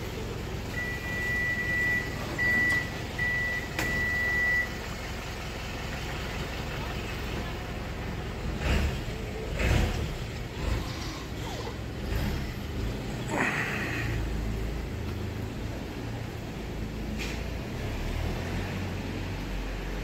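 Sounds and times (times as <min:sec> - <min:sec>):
street traffic rumbling: 0:00.0 - 0:20.0.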